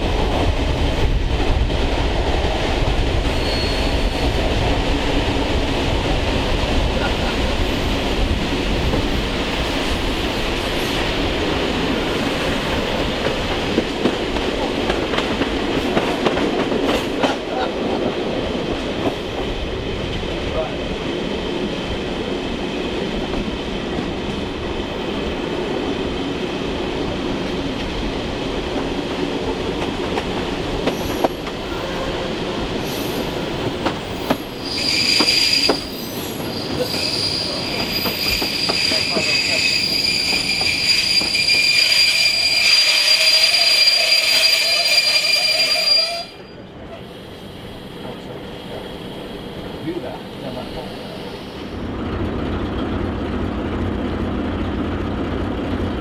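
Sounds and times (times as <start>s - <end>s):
train wheels rumbling on rail: 0.0s - 56.0s
high-pitched wheel squeal: 3.3s - 4.4s, 34.6s - 46.6s.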